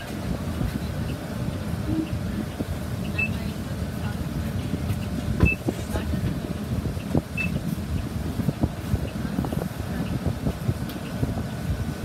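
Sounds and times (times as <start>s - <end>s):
bus engine idling: 0.0s - 12.0s
passengers knocking while boarding: 0.0s - 12.0s
short high beeps: 3.1s - 3.4s, 7.4s - 7.6s.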